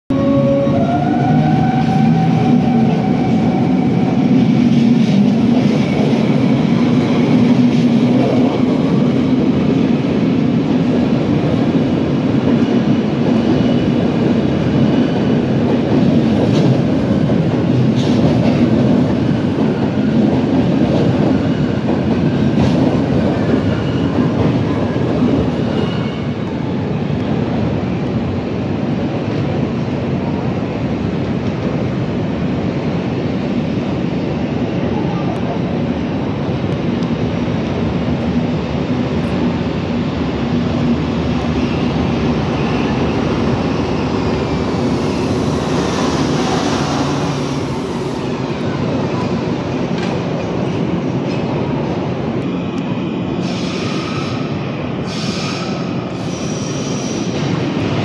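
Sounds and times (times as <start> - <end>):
train wheels rumbling on track: 0.1 - 58.0
train whine: 0.1 - 58.0.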